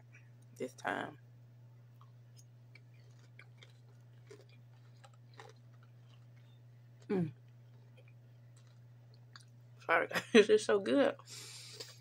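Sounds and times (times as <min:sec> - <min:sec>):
low steady hum: 0:00.0 - 0:12.0
person chewing: 0:01.9 - 0:09.7, 0:11.2 - 0:12.0.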